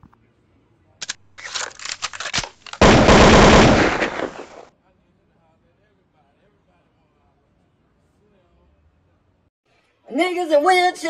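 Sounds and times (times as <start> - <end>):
crackling noise: 1.0 - 4.7.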